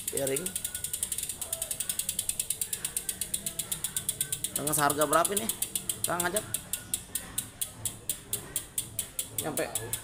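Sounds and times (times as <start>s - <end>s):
bicycle freehub ticking: 0.0s - 10.0s.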